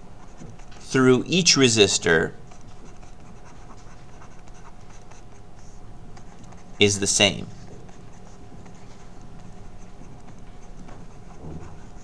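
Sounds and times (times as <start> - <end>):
pen scratching on paper: 0.1 - 1.7, 2.4 - 12.0
person speaking: 0.8 - 2.4, 6.8 - 7.7.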